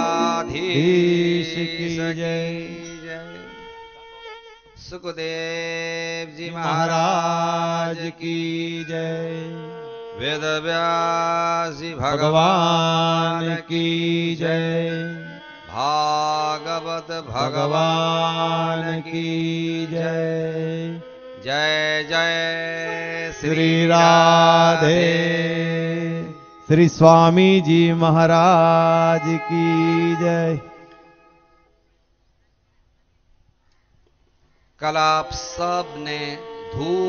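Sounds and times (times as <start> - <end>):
steady held drone: 0.0 - 1.6
person chanting: 0.0 - 3.6, 11.4 - 31.3, 34.8 - 37.0.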